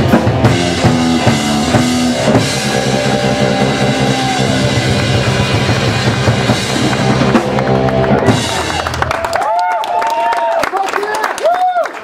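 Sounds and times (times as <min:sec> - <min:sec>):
bass drum: 0:00.0 - 0:09.2
electric guitars: 0:00.0 - 0:09.3
live rock band playing: 0:00.0 - 0:09.4.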